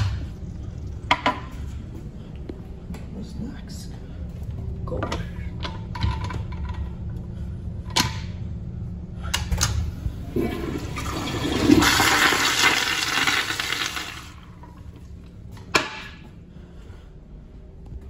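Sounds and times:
toilet flushing: 10.2s - 15.0s.

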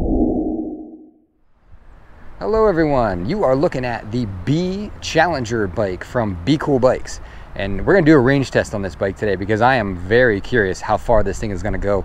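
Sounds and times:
low muffled whoosh: 0.0s - 1.8s
faint background noise: 1.4s - 12.0s.

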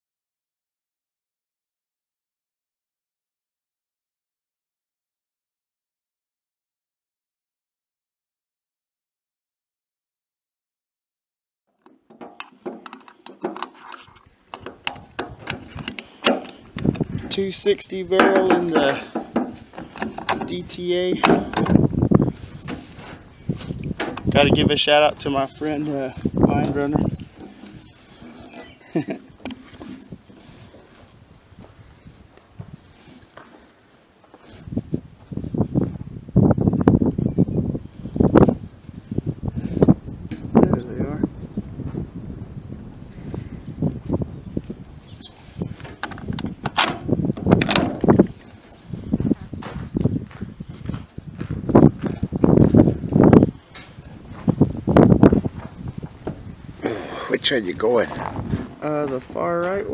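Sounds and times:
rifle handling clicks and knocks: 11.8s - 17.4s, 18.2s - 21.8s, 22.7s - 24.3s, 27.4s - 30.1s, 45.8s - 48.5s
wind buffeting microphone: 14.0s - 33.1s, 34.4s - 59.9s.

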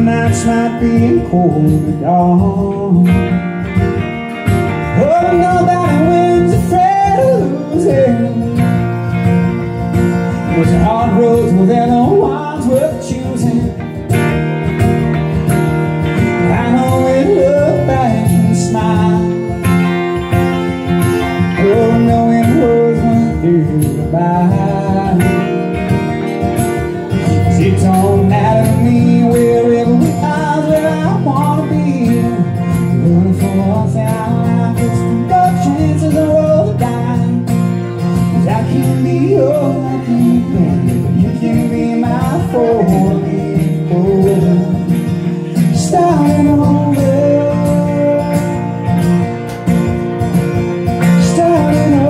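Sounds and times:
strummed acoustic guitar: 0.0s - 52.0s.

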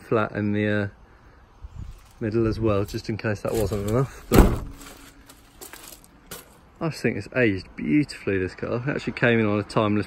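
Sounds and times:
man's voice: 2.2s - 4.3s.

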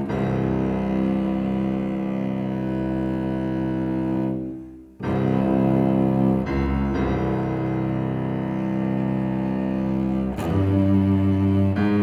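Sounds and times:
cello bowed low note: 0.0s - 12.0s.

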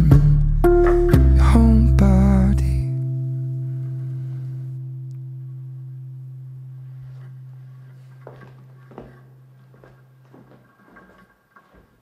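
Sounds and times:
acoustic guitar chord ringing: 0.1s - 10.3s.

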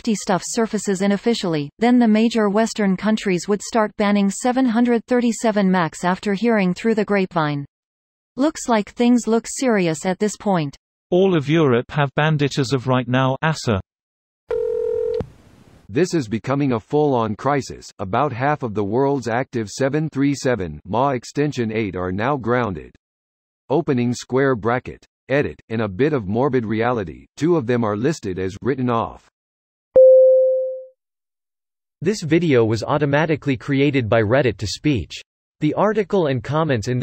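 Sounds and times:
electronic beep: 30.0s - 30.9s.

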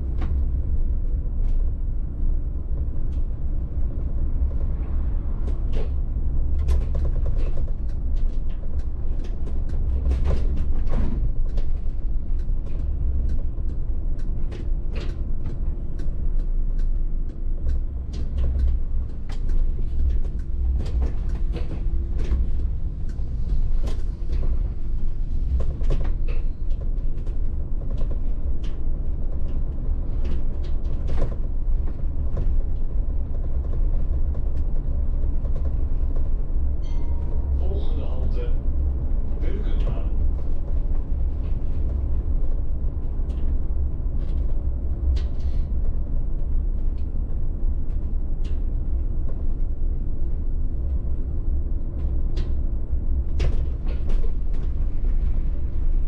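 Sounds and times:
bus road rumble: 0.0s - 56.0s.

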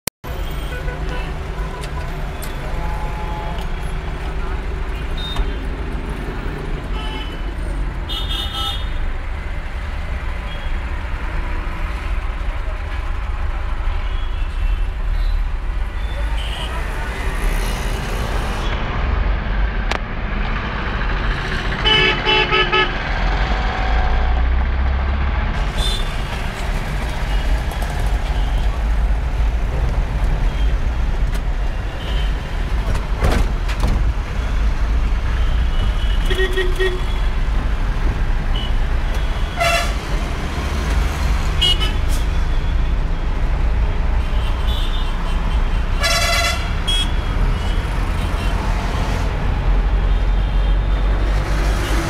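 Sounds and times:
engine and road rumble: 0.1s - 52.0s
car horn toots: 38.6s - 40.0s, 46.0s - 47.7s.

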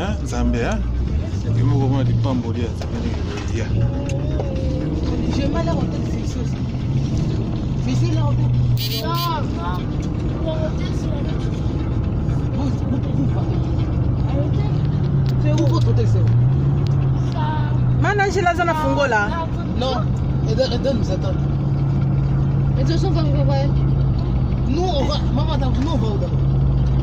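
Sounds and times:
engine and road noise drone: 0.0s - 27.0s
passengers talking and calling out: 0.0s - 27.0s.

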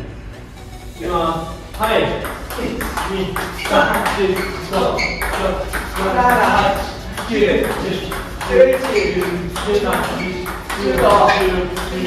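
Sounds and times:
players' voices: 0.0s - 12.0s
table tennis ball hits and bounces: 1.8s - 12.0s.

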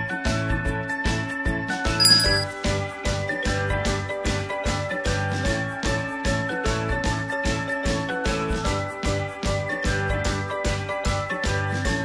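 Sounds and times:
bell-like ding: 2.0s - 2.5s.

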